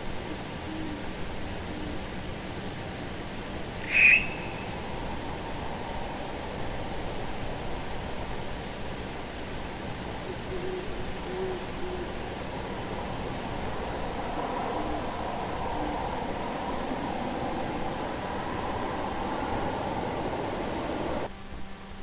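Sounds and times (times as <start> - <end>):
owl hooting faintly: 0.0 - 8.7, 9.6 - 21.3
steady hiss: 0.0 - 22.0.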